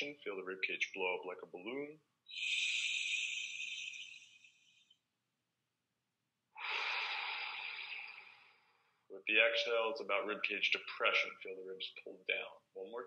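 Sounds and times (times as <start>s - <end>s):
man breathing in through nose: 6.6s - 8.9s
man breathing out: 6.6s - 8.9s.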